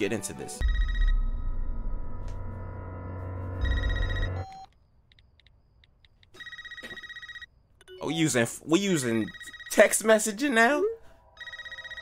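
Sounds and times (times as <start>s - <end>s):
telephone ringing electronic trill: 0.6s - 1.3s, 3.6s - 4.6s, 6.4s - 7.5s, 11.4s - 12.0s.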